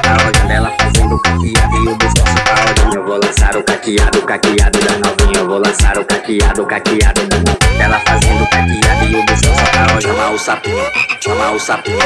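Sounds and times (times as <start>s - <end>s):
rising chirp-like sample: 0.0s - 3.0s
heavy bass: 0.0s - 10.9s
electronic dance music: 0.0s - 12.0s.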